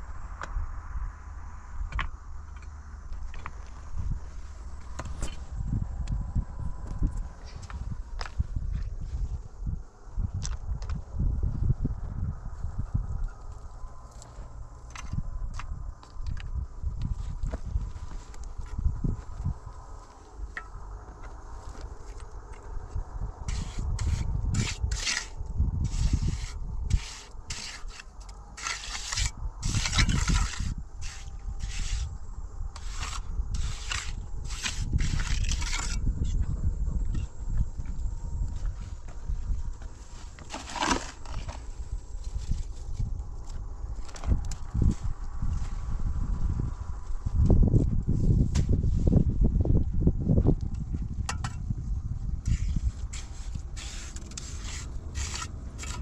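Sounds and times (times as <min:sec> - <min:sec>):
low steady rumble: 0:00.0 - 0:56.0
trowel scraping wet concrete: 0:23.5 - 0:32.1, 0:32.8 - 0:36.0, 0:52.5 - 0:56.0.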